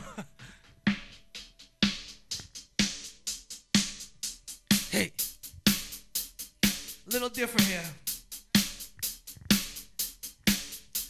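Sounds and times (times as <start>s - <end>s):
hip-hop drum beat: 0.0s - 11.0s.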